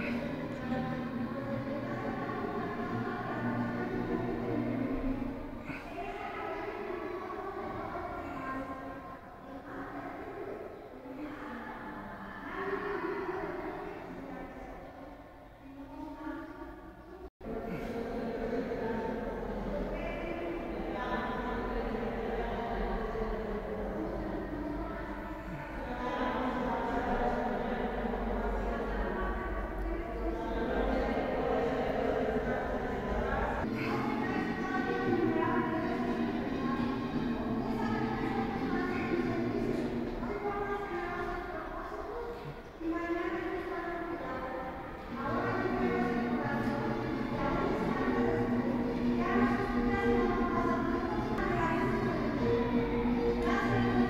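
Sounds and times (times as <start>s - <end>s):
slow church music: 17.5s - 54.0s.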